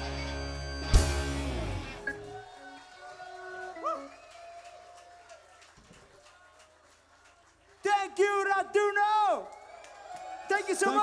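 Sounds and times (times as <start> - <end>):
crowd whooping and cheering: 0.0 - 6.9, 9.2 - 11.0.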